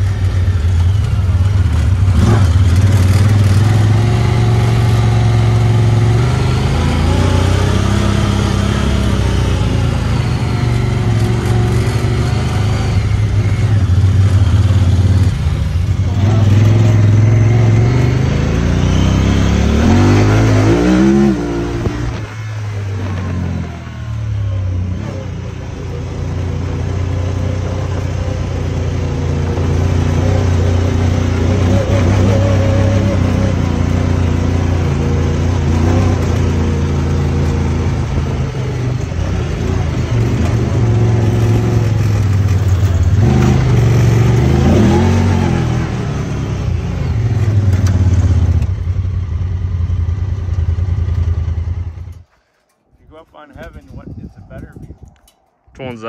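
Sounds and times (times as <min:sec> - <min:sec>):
vehicle engine running under load: 0:00.0 - 0:56.0.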